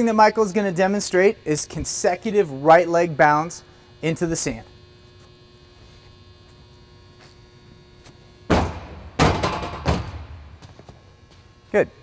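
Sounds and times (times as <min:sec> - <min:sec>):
steady low hum: 0:00.0 - 0:12.0
heavy foot thuds: 0:08.5 - 0:11.0.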